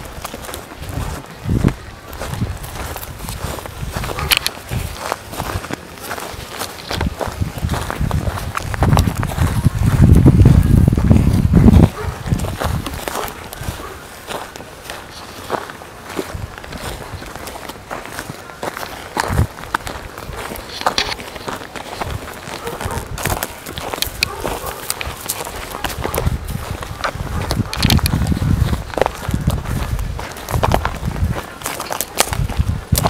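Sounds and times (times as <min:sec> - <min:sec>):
footsteps crunching through dry grass: 0:00.0 - 0:33.0.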